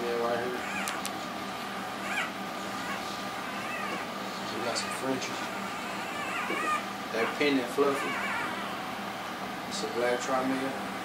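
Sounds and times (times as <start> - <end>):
puppy crying: 0.4 - 1.1, 1.9 - 9.0.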